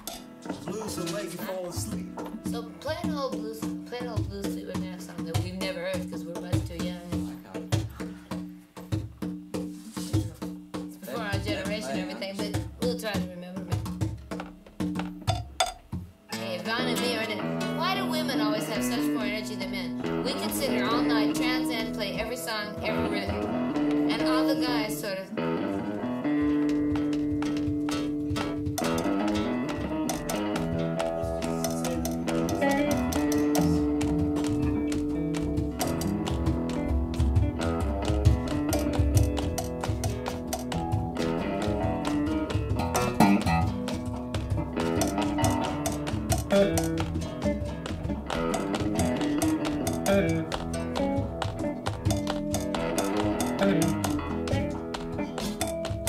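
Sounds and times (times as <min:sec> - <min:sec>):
rock band jamming: 0:00.0 - 0:09.5, 0:13.9 - 0:56.0
drum beat with low thump: 0:00.0 - 0:25.1, 0:26.3 - 0:56.0
light tapping percussion: 0:00.0 - 0:56.0.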